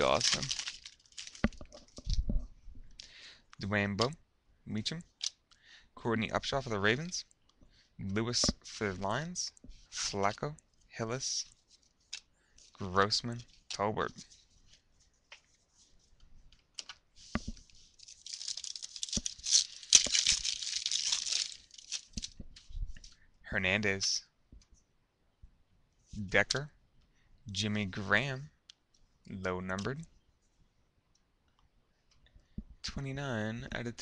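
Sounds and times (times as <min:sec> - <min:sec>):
hands handling card packs: 0:00.0 - 0:02.2, 0:11.7 - 0:23.1.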